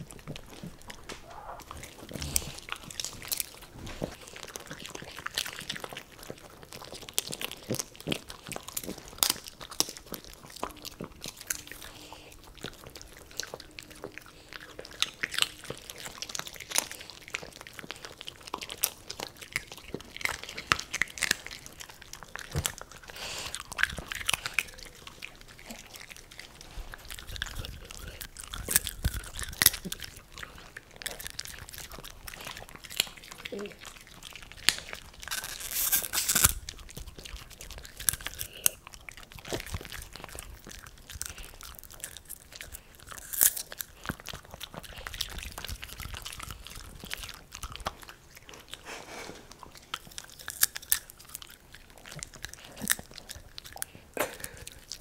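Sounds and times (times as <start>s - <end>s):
dogs crunching popcorn: 0.0s - 55.0s.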